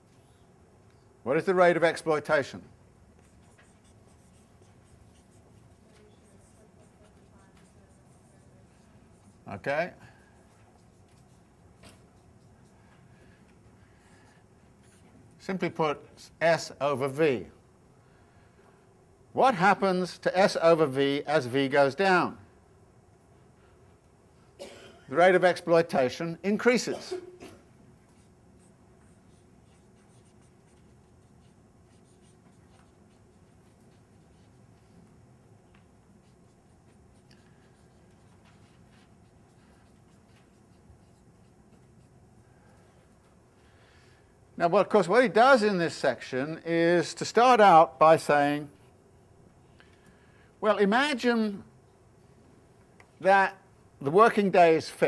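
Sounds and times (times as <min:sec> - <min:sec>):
writing scratching on a board: 0:03.2 - 0:09.4, 0:10.2 - 0:12.9, 0:28.1 - 0:35.1, 0:36.2 - 0:42.2.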